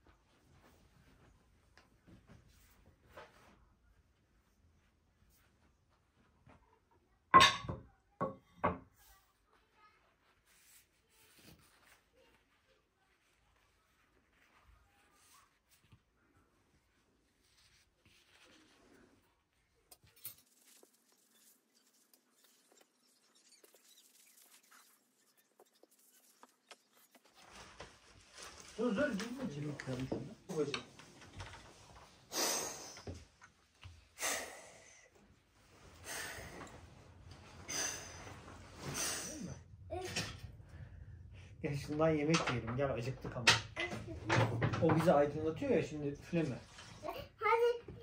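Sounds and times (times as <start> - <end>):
plates knocking on table: 7.3 - 8.9
faint handling sounds: 8.9 - 32.3.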